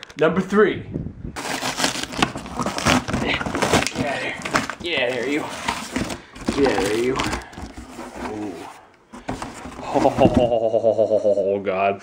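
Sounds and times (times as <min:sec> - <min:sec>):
packing tape peeling off box: 0:01.4 - 0:08.5.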